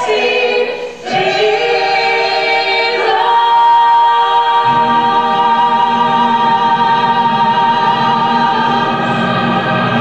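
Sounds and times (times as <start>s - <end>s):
women singing long note: 0.0s - 10.0s.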